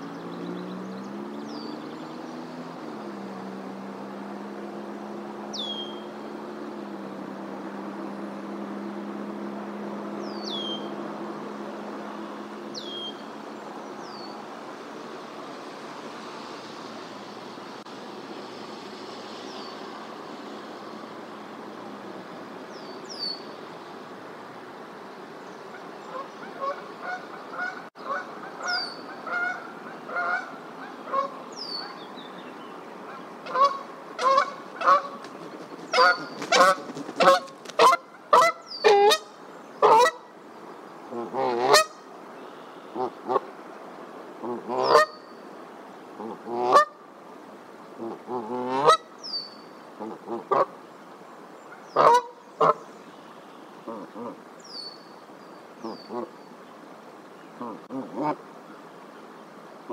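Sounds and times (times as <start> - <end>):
goose honking: 33.4 - 35.1, 41.1 - 42.0, 44.5 - 45.1.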